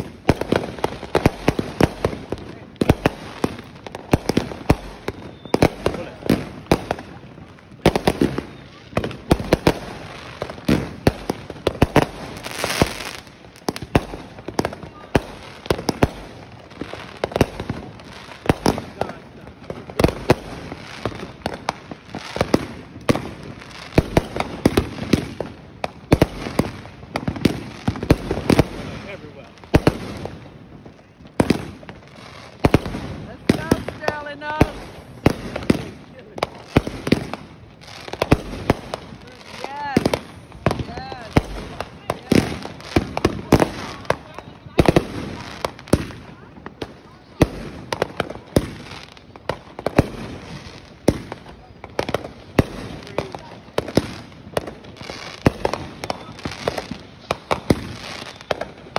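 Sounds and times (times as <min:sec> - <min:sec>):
fireworks cracking and banging: 0:00.0 - 0:58.9.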